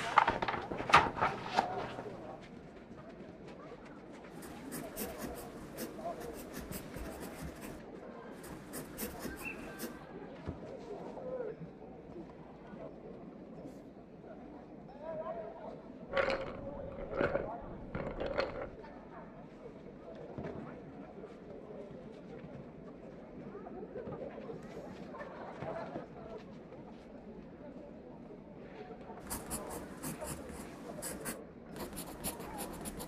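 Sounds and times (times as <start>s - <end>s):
steady murmur: 4.4s - 7.8s, 29.3s - 33.0s.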